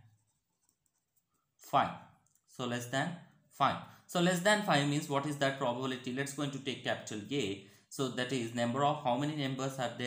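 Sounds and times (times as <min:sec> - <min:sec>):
pen writing on paper: 0:00.0 - 0:01.3
man talking: 0:01.6 - 0:10.0.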